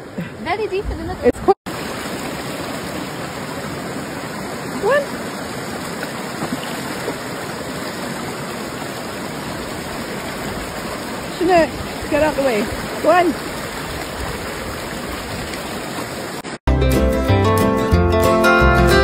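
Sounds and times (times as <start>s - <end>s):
stream rushing over boulders: 1.3s - 16.6s.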